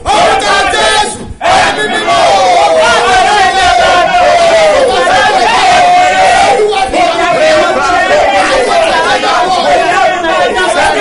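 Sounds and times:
man and woman praying aloud: 0:00.0 - 0:11.0.

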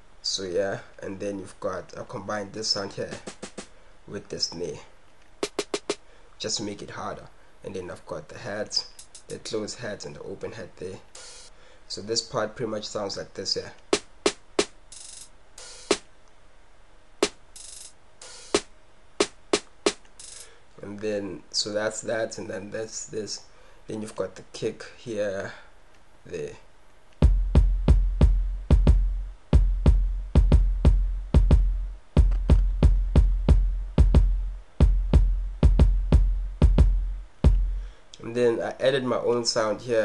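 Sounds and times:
open hi-hat hisses: 0:00.0 - 0:16.2, 0:17.2 - 0:40.0
drum machine snare hits: 0:03.0 - 0:03.7, 0:05.4 - 0:06.0, 0:08.8 - 0:09.4, 0:11.1 - 0:11.5, 0:13.8 - 0:16.1, 0:17.2 - 0:20.5, 0:27.2 - 0:37.8.

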